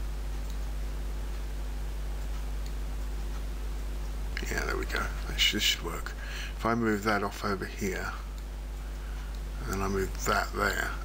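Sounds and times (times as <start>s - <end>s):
steady low hum: 0.0s - 11.0s
faint clicks: 0.3s - 0.7s.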